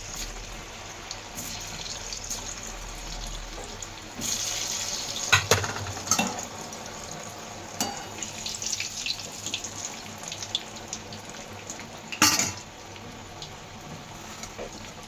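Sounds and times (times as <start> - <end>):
food sizzling in hot oil: 0.0 - 15.0.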